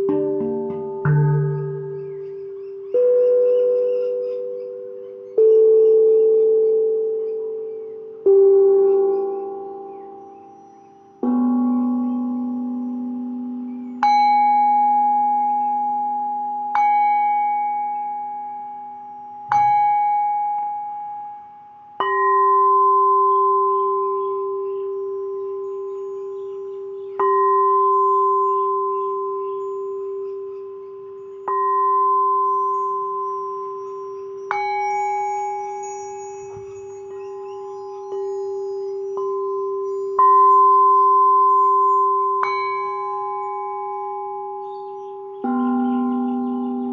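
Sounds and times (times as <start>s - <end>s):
tuned metal percussion ringing: 0.0s - 46.9s.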